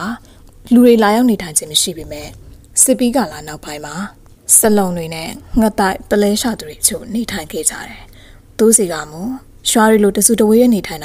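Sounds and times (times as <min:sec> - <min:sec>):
woman narrating a story: 0:00.0 - 0:11.0.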